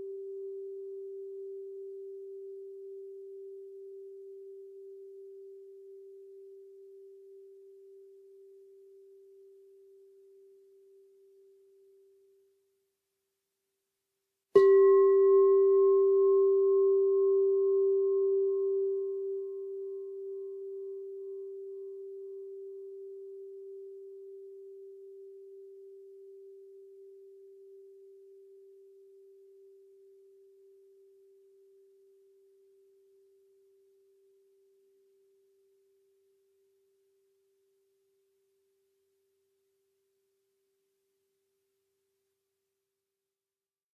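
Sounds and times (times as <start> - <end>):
singing bowl ringing: 14.6 - 34.2.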